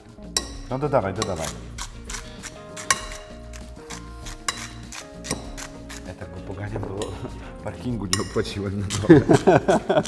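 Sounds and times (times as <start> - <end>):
background music held notes: 0.0 - 10.0
metal masher clinking glass bowl: 0.4 - 6.1, 8.1 - 9.6.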